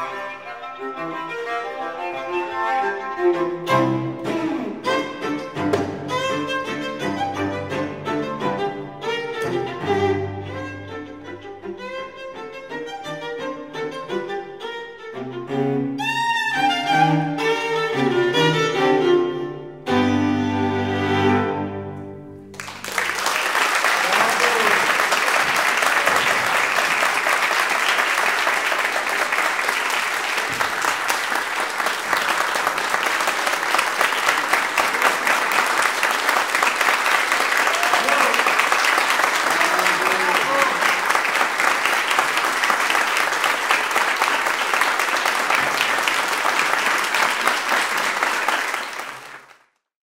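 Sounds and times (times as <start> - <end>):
audience applauding: 22.5 - 49.8.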